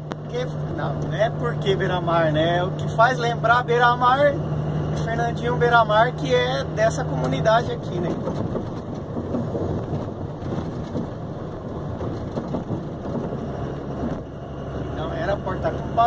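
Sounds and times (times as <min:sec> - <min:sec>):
engine and tyre rumble: 0:00.0 - 0:16.0
passing traffic: 0:00.0 - 0:16.0.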